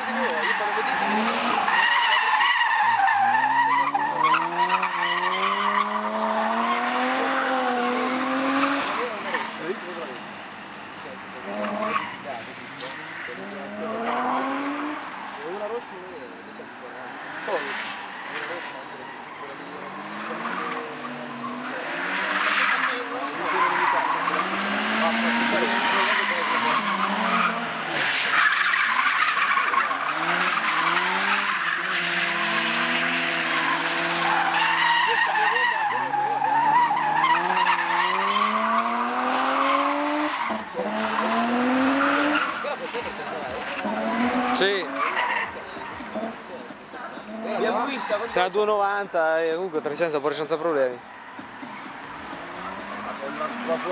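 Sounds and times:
tyres squealing: 0.0s - 49.2s
car engine revving: 0.0s - 53.9s.

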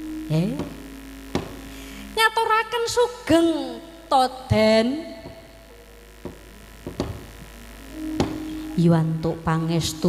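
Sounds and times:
low mains hum: 0.0s - 10.0s
short sharp knocks: 1.3s - 1.6s, 6.2s - 7.3s.

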